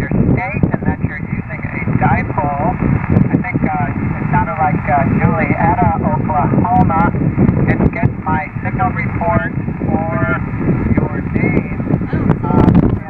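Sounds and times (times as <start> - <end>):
muffled radio voice: 0.0 - 7.1, 7.7 - 13.0
radio static and hiss: 0.0 - 13.0.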